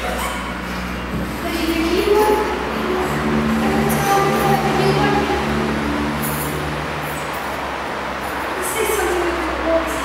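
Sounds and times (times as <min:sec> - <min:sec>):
constant low hum: 0:00.0 - 0:10.0.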